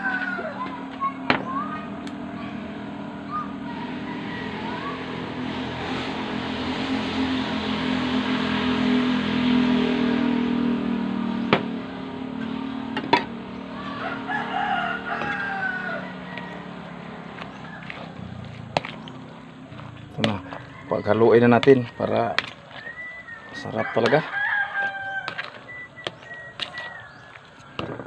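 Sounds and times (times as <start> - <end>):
roosters crowing: 0.0 - 1.2, 2.6 - 8.5, 12.5 - 28.0.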